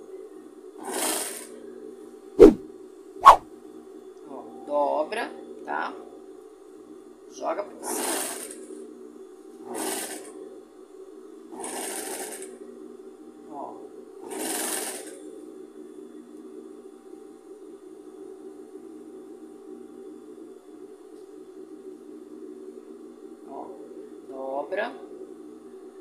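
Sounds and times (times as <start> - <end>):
short bursts of noise: 2.4 - 2.6, 3.2 - 3.4.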